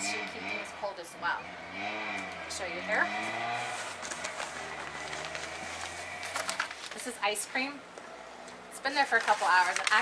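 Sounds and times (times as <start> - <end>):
faint handling clicks and rustles: 3.8 - 10.0.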